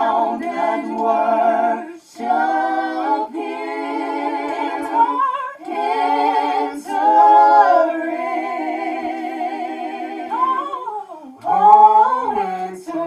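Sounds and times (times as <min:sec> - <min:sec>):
vocal group singing a cappella: 0:00.0 - 0:13.0.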